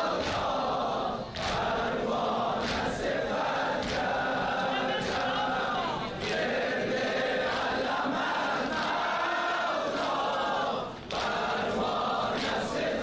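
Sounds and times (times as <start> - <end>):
men chanting in unison: 0.0 - 13.0.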